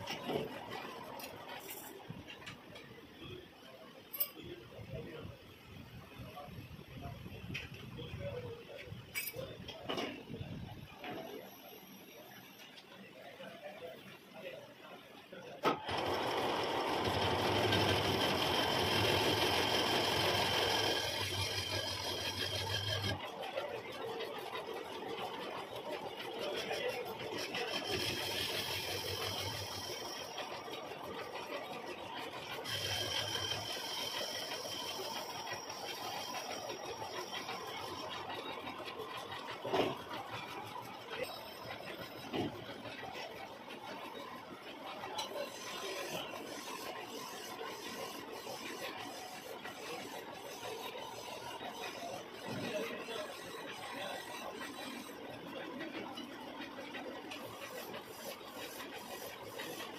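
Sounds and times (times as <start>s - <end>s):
metal lathe humming: 16.0s - 23.2s, 27.4s - 30.7s, 32.5s - 38.3s.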